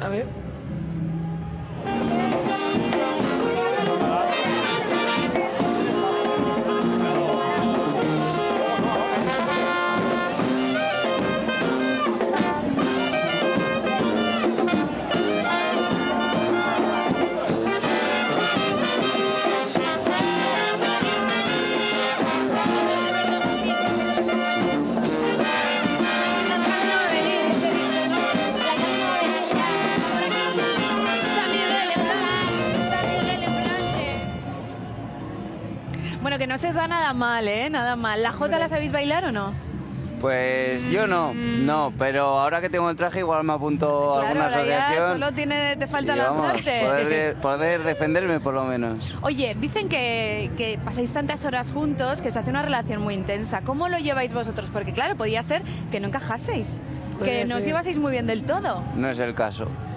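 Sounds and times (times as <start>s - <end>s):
street brass band playing: 0.0s - 59.9s.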